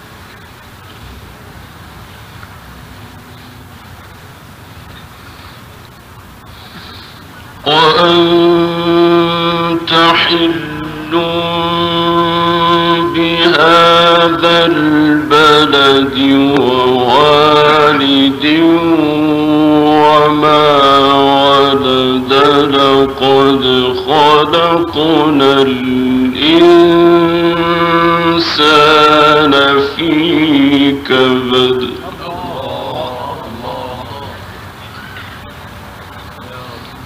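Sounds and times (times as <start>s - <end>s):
man chanting melodic recitation: 7.6s - 34.6s, 36.4s - 37.0s.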